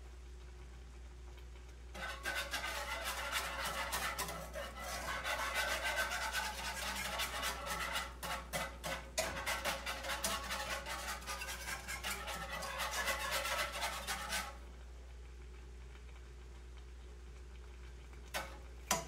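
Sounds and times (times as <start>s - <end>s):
whisk scraping a pan: 1.9s - 14.8s, 18.3s - 19.0s.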